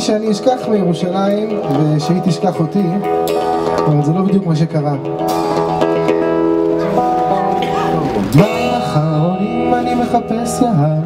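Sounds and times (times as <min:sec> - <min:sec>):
acoustic guitars strumming chords: 0:00.0 - 0:11.0.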